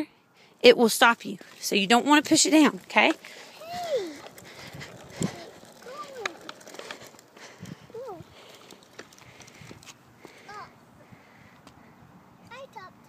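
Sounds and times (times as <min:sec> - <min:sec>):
bike wheels rattling on concrete: 0:02.0 - 0:10.7
child's wordless vocal calls: 0:03.6 - 0:04.3, 0:07.9 - 0:08.4, 0:10.4 - 0:10.8.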